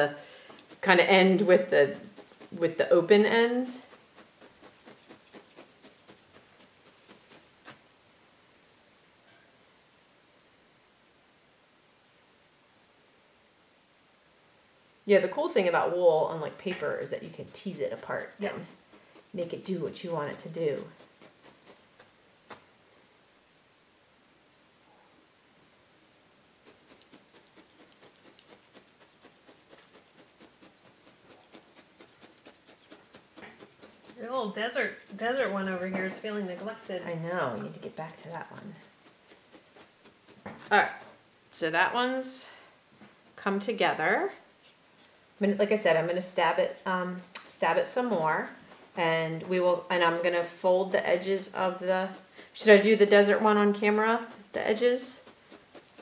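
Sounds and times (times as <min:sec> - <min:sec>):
felting needle ticks: 0:00.0 - 0:07.8, 0:15.5 - 0:22.6, 0:26.6 - 0:41.1, 0:45.6 - 0:56.0.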